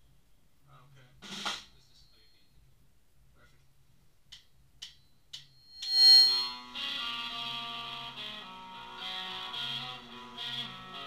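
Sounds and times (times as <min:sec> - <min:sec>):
drumstick count-in clicks: 0:04.3 - 0:05.5
band hit with high ringing: 0:05.7 - 0:06.8.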